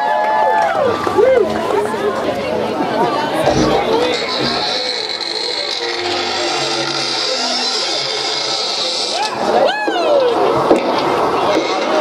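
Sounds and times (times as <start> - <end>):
crowd chatter and shouts: 0.0 - 12.0
low bass notes and thumps: 3.4 - 7.4.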